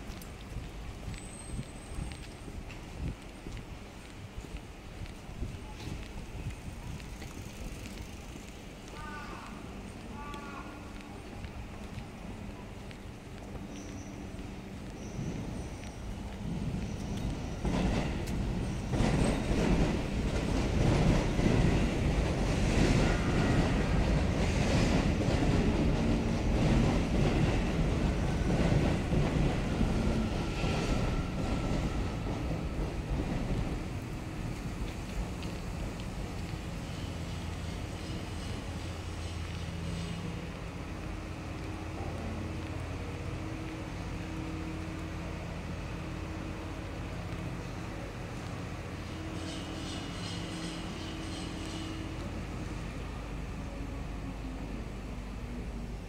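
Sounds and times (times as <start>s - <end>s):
train running past: 0.0s - 56.0s
urban street ambience: 0.0s - 56.0s
soft footsteps: 30.8s - 47.6s
high-pitched squeal: 49.0s - 52.3s.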